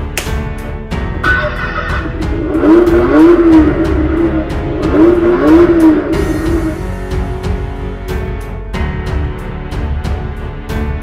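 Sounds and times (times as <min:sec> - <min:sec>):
music with steady beat: 0:00.0 - 0:11.0
car engine revving: 0:01.2 - 0:07.8.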